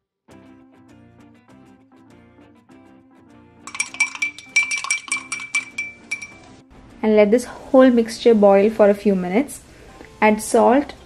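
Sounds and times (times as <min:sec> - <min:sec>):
soft background music: 0:00.3 - 0:11.0
spoon clinking in glass: 0:03.7 - 0:06.6.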